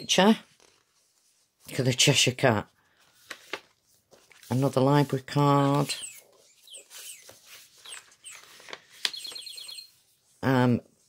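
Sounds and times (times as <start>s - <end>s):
paper rustling and sliding: 0.5s - 1.7s, 2.9s - 10.3s
high-pitched chirping trill: 6.0s - 7.2s, 9.1s - 10.0s.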